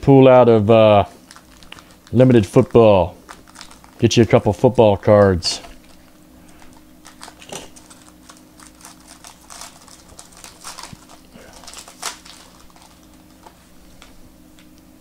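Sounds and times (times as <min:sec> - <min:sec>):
foil pack crinkling: 0:00.6 - 0:14.8
cards rustling: 0:01.0 - 0:14.8.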